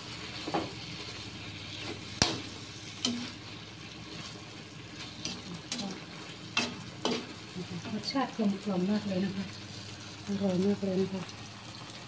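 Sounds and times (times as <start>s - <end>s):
squid sizzling in a wok: 0.0s - 12.0s
metal spatula scraping: 0.4s - 4.4s, 5.0s - 7.3s
spatula clacking on pan: 2.2s - 3.3s, 6.6s - 7.3s.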